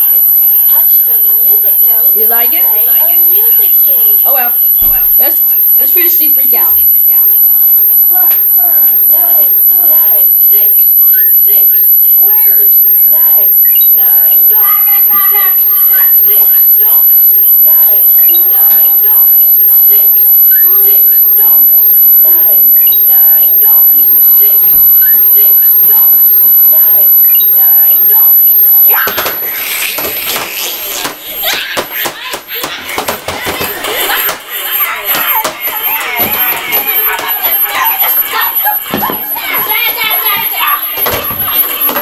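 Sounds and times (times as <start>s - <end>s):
electronic toy melody: 0.0s - 42.0s
toy voice prompts: 0.0s - 42.0s
jumble of knocks and noise: 29.0s - 42.0s.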